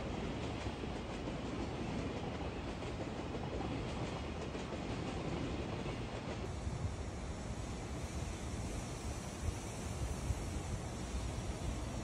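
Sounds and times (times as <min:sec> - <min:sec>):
train rumbling on tracks: 0:00.0 - 0:12.0.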